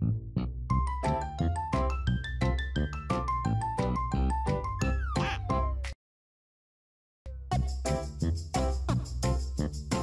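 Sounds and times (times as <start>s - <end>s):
upbeat children's music: 0.7s - 6.0s, 7.3s - 10.0s.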